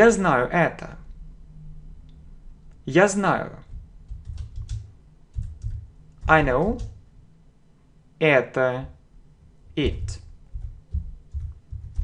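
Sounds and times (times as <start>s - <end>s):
keyboard key clicks: 3.7s - 7.0s.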